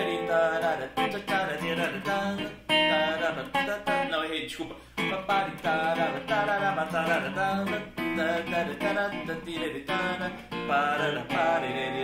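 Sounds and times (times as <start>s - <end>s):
electric guitar strumming: 0.0s - 4.3s, 5.0s - 12.0s.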